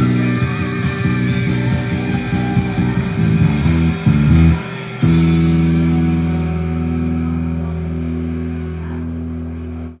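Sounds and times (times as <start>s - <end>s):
rock song recording: 0.0s - 9.9s
electric bass guitar: 0.0s - 10.0s.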